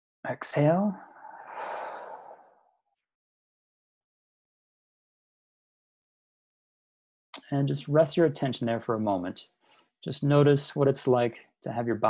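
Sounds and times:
person exhaling a sigh: 0:01.1 - 0:02.5.

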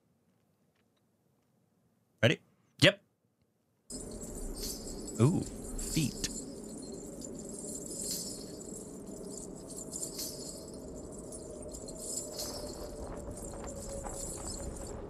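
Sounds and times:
low steady rumble: 0:03.9 - 0:14.8
ankle bells jingling: 0:03.9 - 0:15.0.

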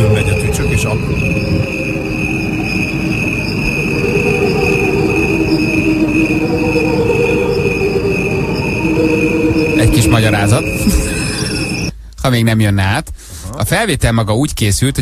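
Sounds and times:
crickets chirping: 0:00.0 - 0:12.0
slowed cricket song low tones: 0:00.0 - 0:12.0.

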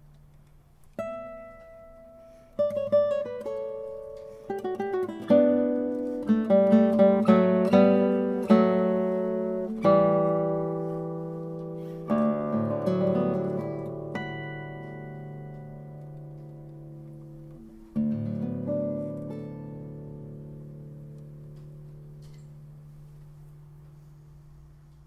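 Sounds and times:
classical guitar playing: 0:00.0 - 0:25.0.

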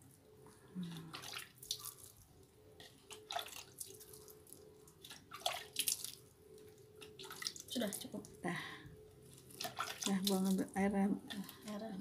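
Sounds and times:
water splashing onto soil: 0:05.0 - 0:06.2, 0:09.5 - 0:10.7.

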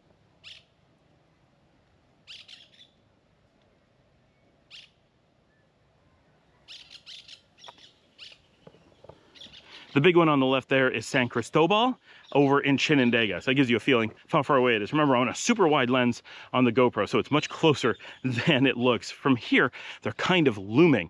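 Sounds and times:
small birds chirping: 0:00.4 - 0:00.8, 0:02.2 - 0:10.2, 0:11.1 - 0:14.3, 0:16.2 - 0:19.0.

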